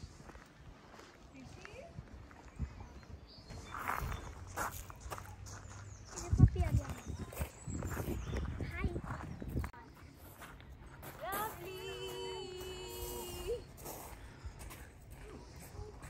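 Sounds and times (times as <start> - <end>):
footsteps on gravel: 0.0 - 16.0
people chatting: 1.4 - 2.0, 6.1 - 7.5, 11.0 - 13.7.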